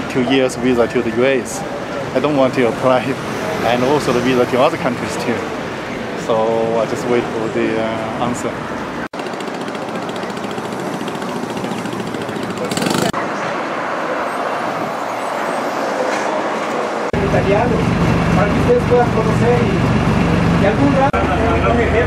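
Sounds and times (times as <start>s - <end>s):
street traffic passing: 0.0s - 22.0s
bus engine rumbling: 7.9s - 22.0s
voices: 9.2s - 22.0s.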